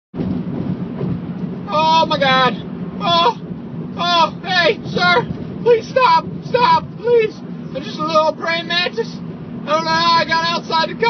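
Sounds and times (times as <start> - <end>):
truck road and engine noise: 0.1 - 11.0
high-pitched voice crying out: 3.0 - 3.4.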